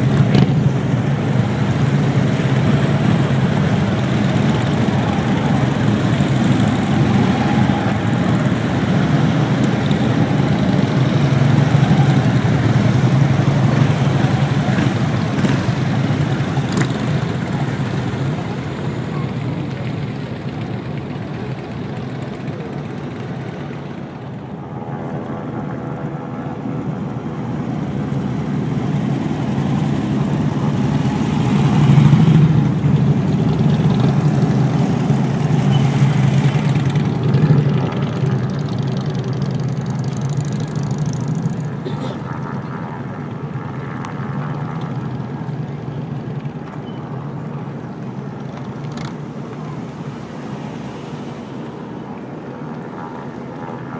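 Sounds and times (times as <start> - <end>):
vehicles passing by: 0.0 - 53.9.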